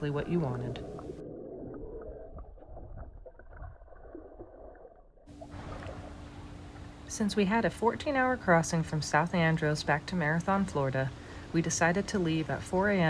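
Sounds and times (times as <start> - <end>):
boat engine humming: 0.0 - 1.2, 5.3 - 12.9
muffled underwater noise: 0.0 - 1.7.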